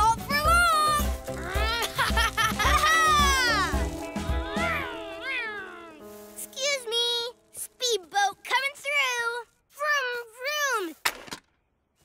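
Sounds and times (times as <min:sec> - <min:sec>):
cartoon voices calling out: 0:00.0 - 0:02.0.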